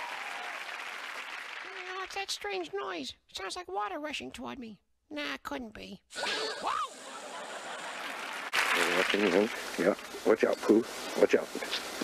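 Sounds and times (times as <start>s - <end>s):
sprinkler water hissing: 6.2s - 12.0s.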